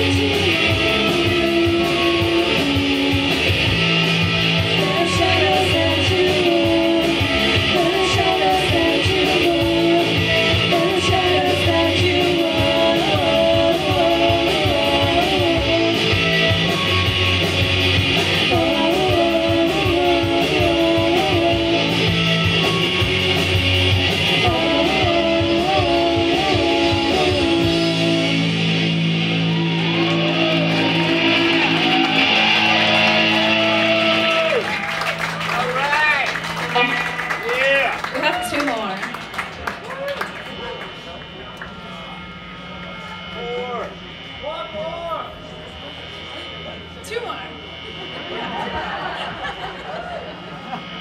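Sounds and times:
person singing: 0.0 - 3.5, 4.6 - 17.4, 18.4 - 23.3, 24.2 - 28.6
bass: 0.0 - 51.0
distorted electric guitars: 0.0 - 51.0
drums: 0.0 - 51.0.

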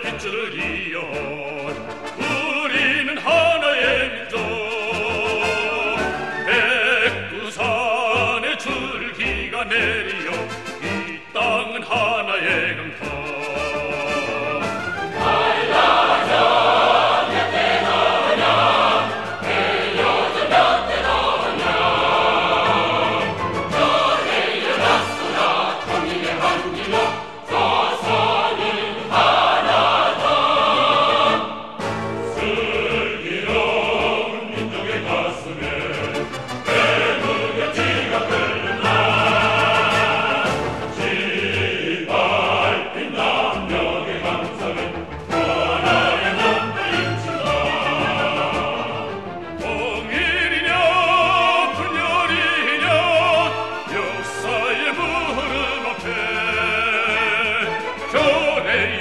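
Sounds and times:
choir singing with instruments: 0.0 - 59.0.

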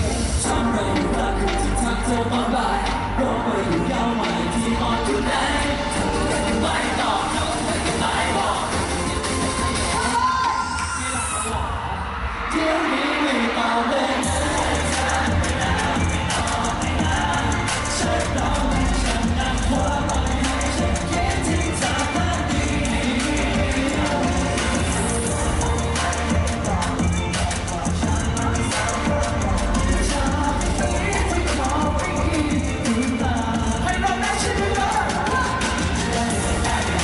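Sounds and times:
live pop song with singing: 0.0 - 37.0.

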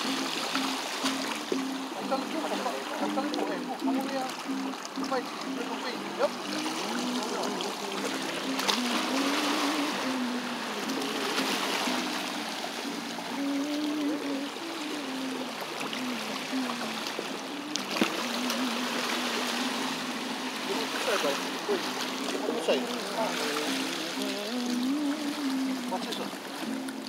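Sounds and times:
melody of held notes: 0.0 - 27.0
small waves against rocks: 0.0 - 27.0.

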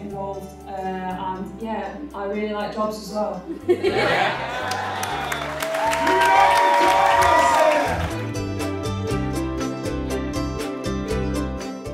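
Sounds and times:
crowd applauding and cheering: 4.0 - 9.0
voices whooping: 4.6 - 8.1
music with steady bass line: 6.9 - 11.9.

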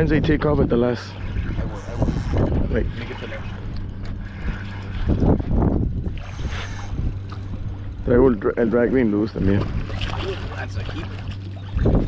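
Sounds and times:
steady low hum: 0.0 - 12.0
water noise: 0.0 - 12.0
wind: 0.0 - 12.0.

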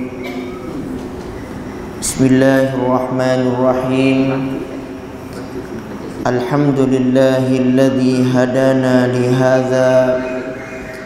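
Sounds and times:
hall background noise: 0.0 - 11.0.

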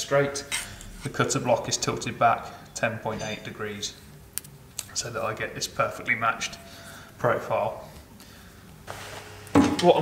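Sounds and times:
man talking: 0.0 - 4.0, 4.9 - 8.0.

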